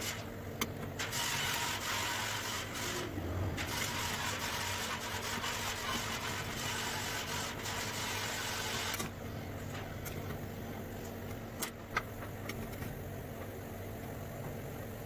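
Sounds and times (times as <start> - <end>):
low mechanical hum: 0.0 - 15.0.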